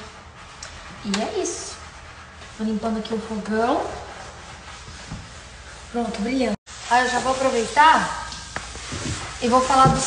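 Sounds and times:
sponge rubbing stovetop: 0:00.0 - 0:10.0.

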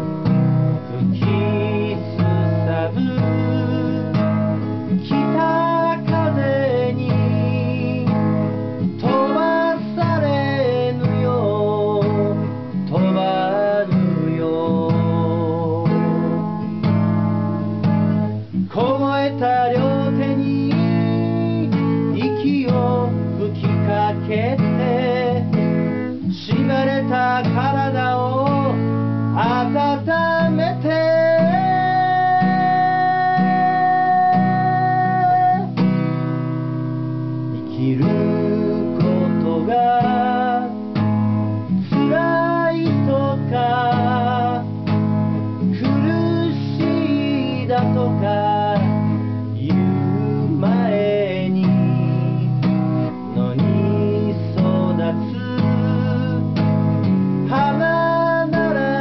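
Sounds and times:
strummed acoustic guitar: 0:00.0 - 0:59.0
man singing: 0:00.8 - 0:16.4, 0:18.6 - 0:35.9, 0:37.5 - 0:41.0, 0:41.7 - 0:45.0, 0:45.6 - 0:59.0.

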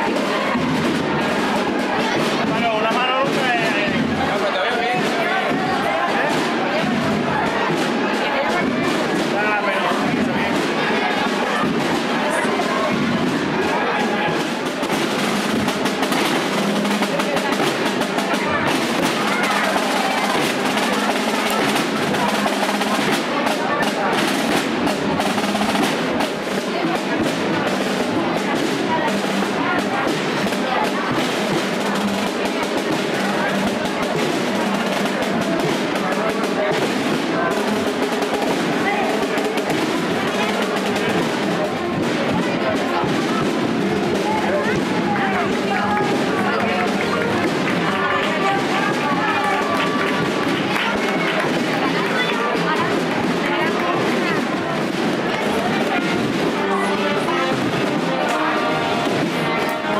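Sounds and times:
crowd voices: 0:00.0 - 0:59.9
music: 0:00.0 - 0:59.9
snare drum rolls: 0:00.0 - 0:59.9.

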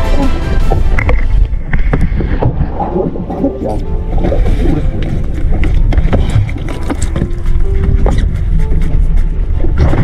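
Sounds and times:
boat engine rumble: 0:00.0 - 0:10.0.

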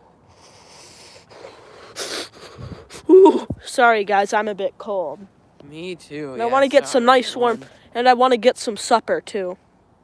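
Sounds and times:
sharp shivering breath: 0:00.2 - 0:03.5.

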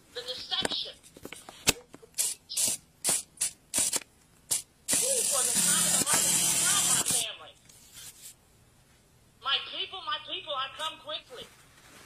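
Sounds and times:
person speaking: 0:00.0 - 0:01.1, 0:04.9 - 0:07.7, 0:09.4 - 0:11.6
short hissing bursts: 0:02.2 - 0:07.2
loud steady hiss: 0:02.2 - 0:07.3.

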